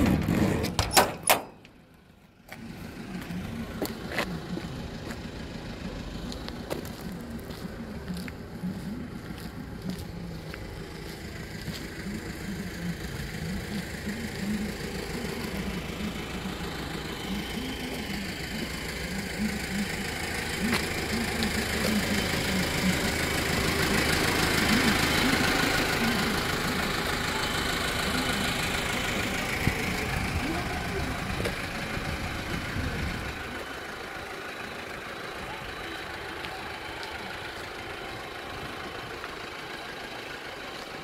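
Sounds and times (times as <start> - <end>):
vehicle engine idling: 0.0 - 41.0.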